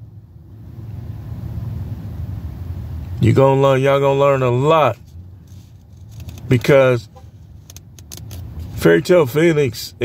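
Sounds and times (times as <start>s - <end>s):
car rumble inside cabin: 0.0s - 10.0s.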